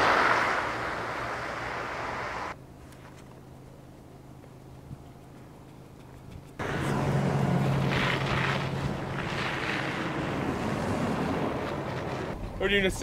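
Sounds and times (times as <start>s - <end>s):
vehicle engine drone: 0.0s - 13.0s
wind and road noise: 0.0s - 13.0s.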